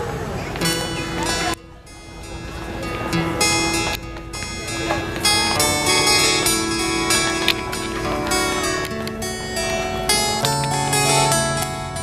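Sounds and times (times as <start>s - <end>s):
acoustic guitars plucking: 0.0s - 12.0s.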